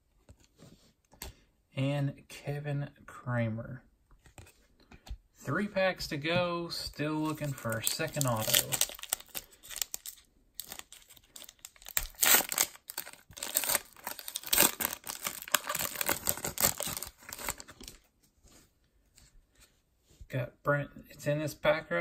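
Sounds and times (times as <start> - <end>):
trading cards rustling and crinkling: 6.7 - 19.8.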